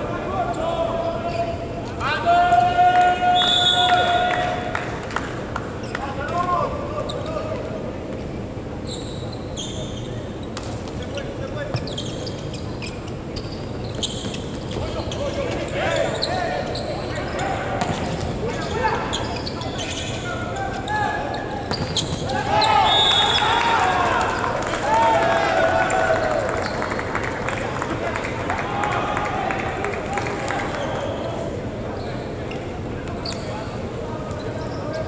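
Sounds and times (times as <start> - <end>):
players calling and shouting: 0.0 - 35.0.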